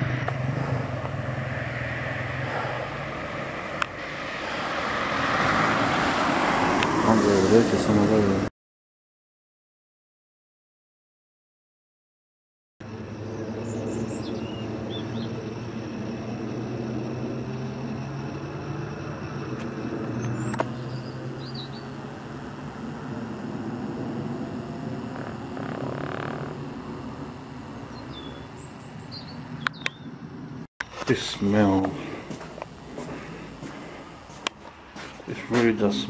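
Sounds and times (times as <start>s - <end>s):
low mechanical hum: 0.0s - 4.4s, 12.8s - 36.0s
sharp clicks: 19.6s - 21.8s
faint bird chirps: 20.2s - 22.0s, 27.8s - 30.2s.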